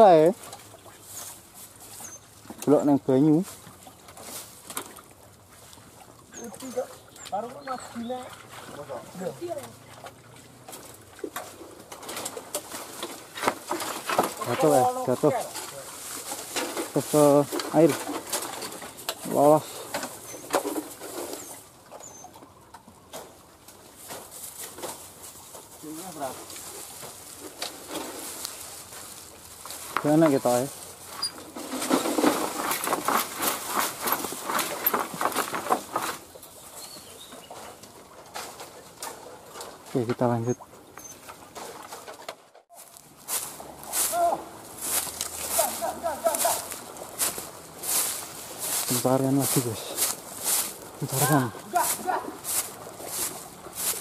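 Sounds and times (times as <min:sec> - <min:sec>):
dry bamboo litter crackling: 0:00.0 - 0:09.8, 0:10.7 - 0:21.7, 0:23.1 - 0:40.5, 0:41.4 - 0:54.0
men calling out: 0:44.0 - 0:44.5, 0:45.4 - 0:46.8, 0:51.0 - 0:52.5.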